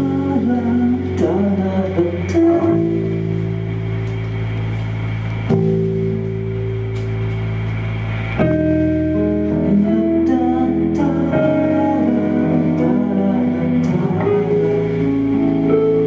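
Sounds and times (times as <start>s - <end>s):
held electric guitar chords: 0.0s - 16.0s.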